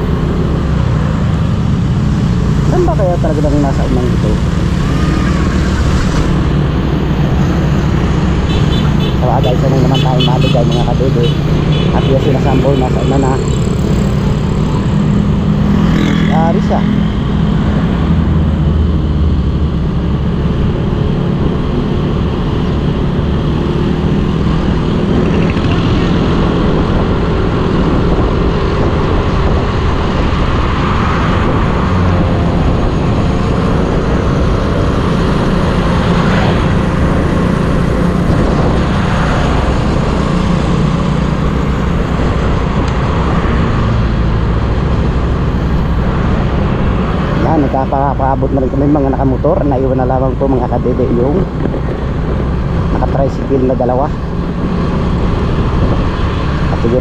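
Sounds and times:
motorcycle engine running: 0.0 - 18.1, 19.6 - 29.4
wind and road noise: 0.0 - 57.0.

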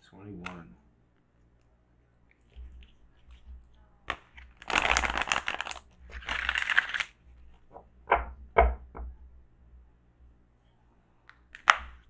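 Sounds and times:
cards being shuffled: 2.3 - 7.8, 11.3 - 12.0
cards tapping: 2.3 - 8.8, 11.3 - 12.0.

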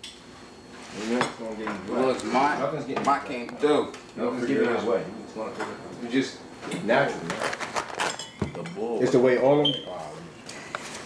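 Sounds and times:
dishes and cutlery clinking: 6.7 - 9.1.

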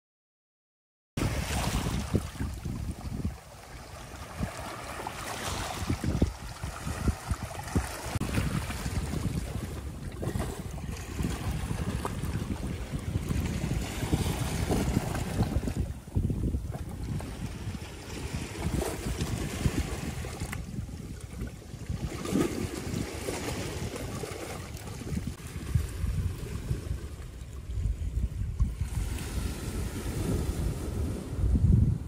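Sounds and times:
waves on a rocky shore: 1.2 - 32.0
wind buffeting microphone: 1.2 - 32.0.

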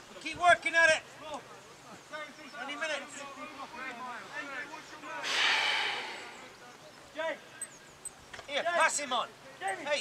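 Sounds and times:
loud breathy exhale: 5.2 - 6.5
distant players shouting: 5.2 - 6.6.

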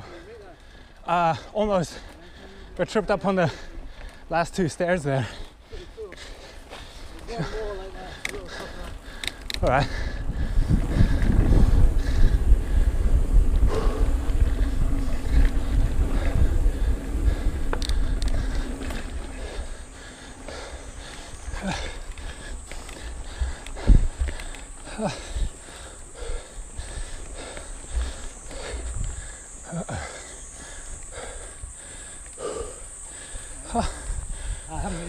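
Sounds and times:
bike tyre noise: 0.0 - 35.0
bike rattling: 0.6 - 35.0
wind rumble on microphone: 9.6 - 20.6, 21.4 - 29.6, 33.7 - 35.0.

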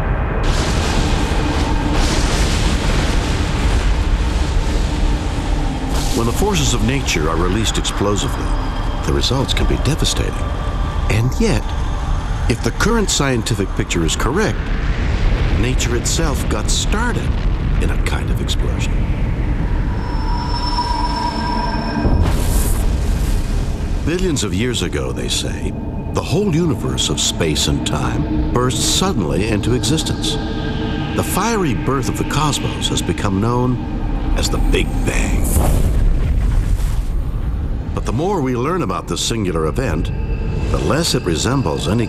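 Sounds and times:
high whining tones: 0.0 - 15.6, 18.8 - 42.0
explosion blast rumbling roar: 0.0 - 38.2.

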